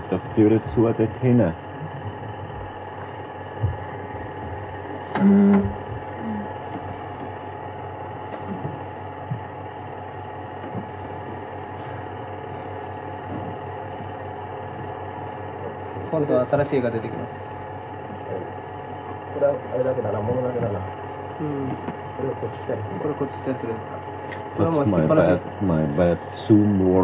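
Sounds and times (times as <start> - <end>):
recording hum and hiss: 0.0 - 27.0
person humming mm: 5.1 - 6.6.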